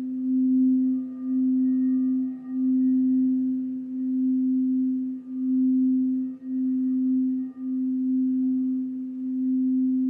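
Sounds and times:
singing bowl tone: 0:00.0 - 0:10.0.

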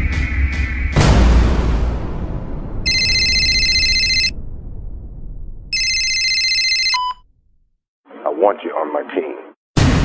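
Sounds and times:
low rumble of boom: 0:00.0 - 0:05.9
telephone ringing: 0:02.9 - 0:04.4, 0:05.7 - 0:07.2.

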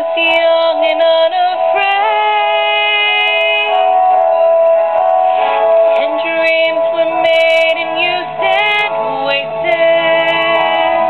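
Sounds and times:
woman singing a slow ballad: 0:00.0 - 0:03.8, 0:05.9 - 0:11.0
held accompaniment: 0:00.0 - 0:11.0.

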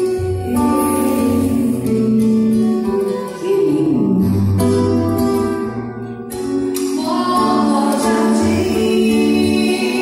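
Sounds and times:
acoustic guitar: 0:00.0 - 0:10.0
live band playing: 0:00.0 - 0:10.0
woman singing: 0:00.1 - 0:04.8, 0:06.8 - 0:10.0.

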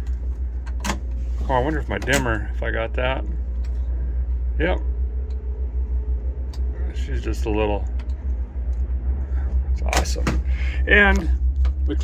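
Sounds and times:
pickup engine idling: 0:00.0 - 0:12.0.

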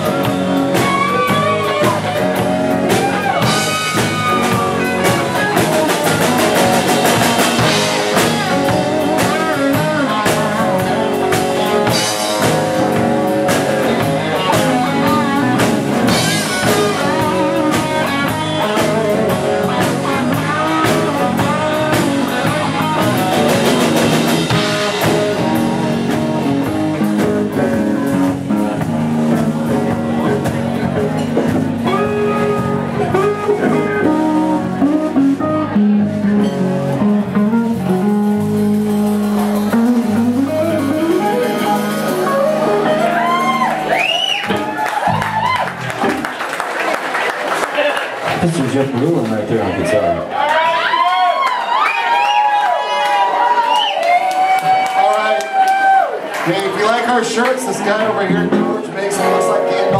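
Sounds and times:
electric guitar lead with bent notes: 0:00.0 - 0:46.3, 0:58.1 - 0:59.9
drum kit: 0:00.0 - 0:47.5.

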